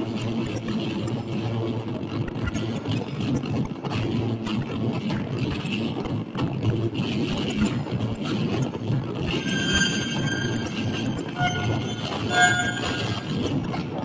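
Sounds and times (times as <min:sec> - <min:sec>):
low electric guitar drone: 0:09.3 - 0:13.5.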